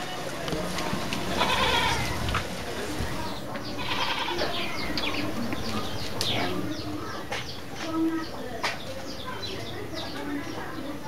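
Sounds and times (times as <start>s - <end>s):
outdoor background sound: 0.0s - 11.0s
drawn-out animal calls: 1.0s - 2.6s, 3.3s - 6.7s.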